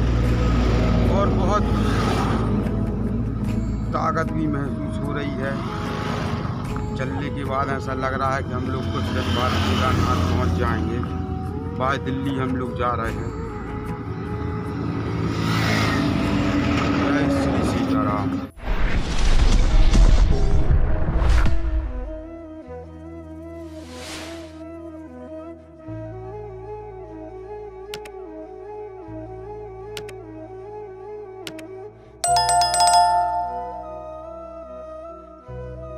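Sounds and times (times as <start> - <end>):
tyre and road rush: 0.0 - 3.4, 5.3 - 7.2, 14.1 - 17.9
background music: 0.0 - 18.6, 21.7 - 35.9
notification bell chime: 32.2 - 34.6.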